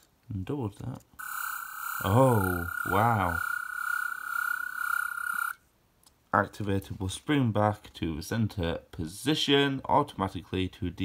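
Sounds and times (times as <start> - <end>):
high-pitched electronic whine: 1.2 - 5.6.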